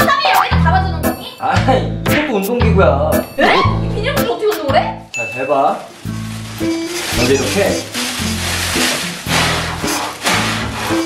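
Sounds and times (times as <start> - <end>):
background music: 0.0 - 11.0
plastic bag rustling: 5.6 - 11.0
hard breaths into plastic bag: 6.1 - 11.0.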